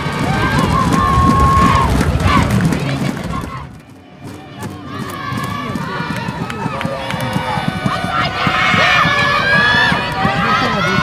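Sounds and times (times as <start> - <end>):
many voices shouting: 0.0 - 11.0.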